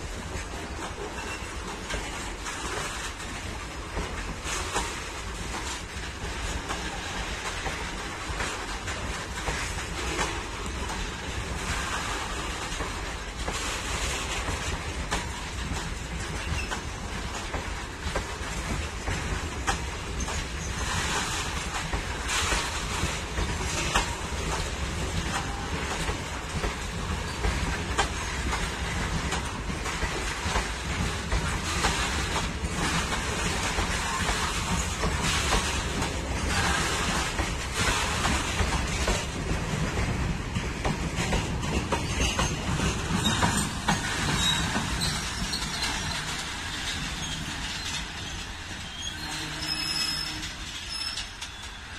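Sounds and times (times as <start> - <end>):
train wheels clattering on rails: 0.0 - 51.9.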